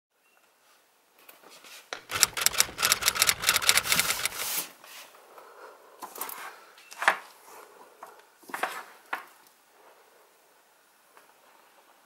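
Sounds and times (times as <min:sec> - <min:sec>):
handbag clicks and rustles: 0:02.1 - 0:04.6.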